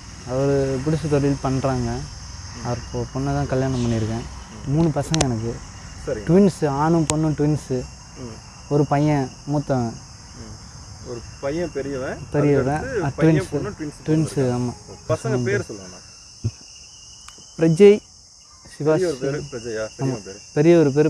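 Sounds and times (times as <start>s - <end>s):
high-pitched insect chorus: 0.0s - 21.0s
man talking: 4.5s - 5.0s, 6.0s - 6.4s, 8.2s - 8.4s, 10.4s - 16.0s, 18.8s - 20.4s.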